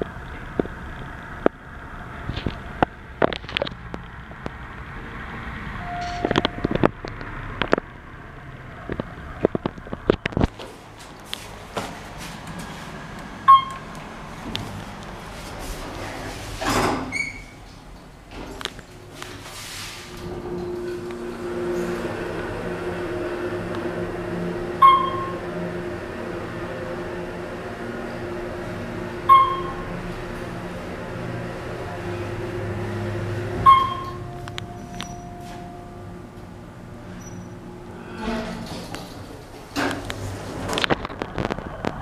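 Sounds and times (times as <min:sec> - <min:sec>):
elevator humming: 0:03.8 - 0:09.5, 0:10.2 - 0:16.4, 0:17.1 - 0:42.0
elevator arrival beep: 0:05.8 - 0:06.8, 0:13.5 - 0:13.8, 0:24.7 - 0:25.5, 0:29.1 - 0:30.0, 0:33.3 - 0:36.2
elevator doors clicking and knocking: 0:20.1 - 0:36.6.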